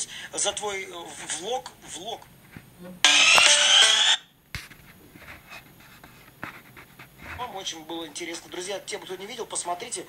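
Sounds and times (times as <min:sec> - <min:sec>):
smartphone ringtone: 0:03.0 - 0:04.2.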